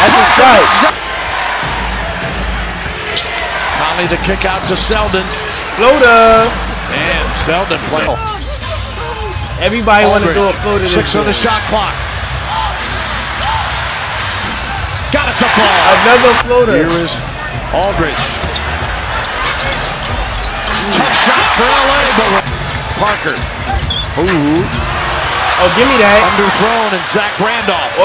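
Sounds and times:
arena crowd noise: 0.0s - 28.0s.

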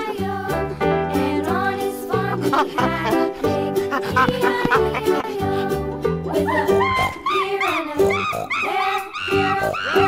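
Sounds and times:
background music: 0.0s - 10.0s
chimpanzee yelping: 6.5s - 10.0s.

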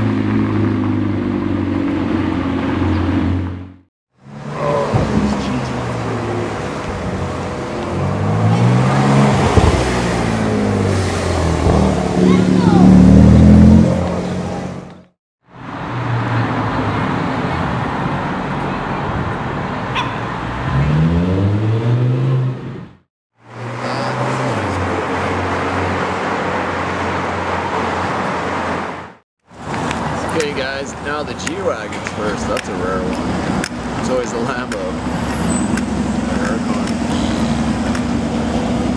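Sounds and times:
sports car engines accelerating: 0.0s - 22.9s, 23.5s - 29.0s, 29.6s - 38.9s.

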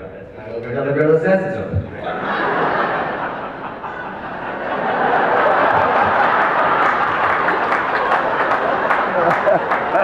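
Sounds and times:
audience laughing: 2.0s - 10.0s
audience clapping: 5.3s - 10.0s.

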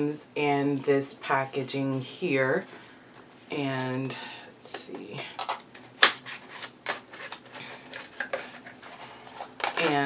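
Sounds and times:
packaging crinkling and rustling: 5.4s - 10.0s.

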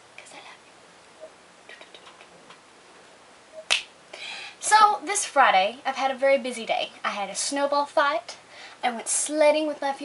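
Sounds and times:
finger snap: 3.6s - 3.9s
woman speaking: 4.6s - 10.0s.

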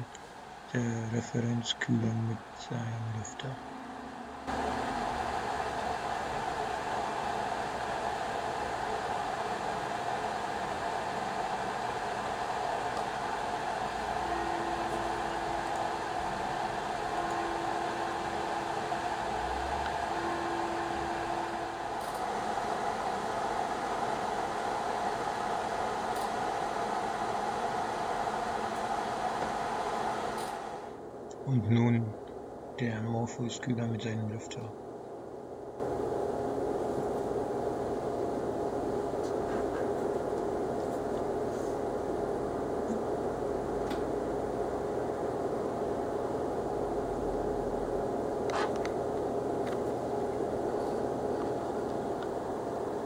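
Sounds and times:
graphics card fan rushing: 0.0s - 32.0s, 35.6s - 53.0s.

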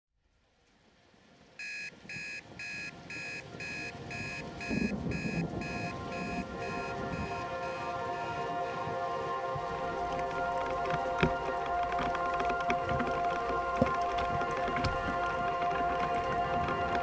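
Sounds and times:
alarm clock beeping: 1.6s - 8.3s.

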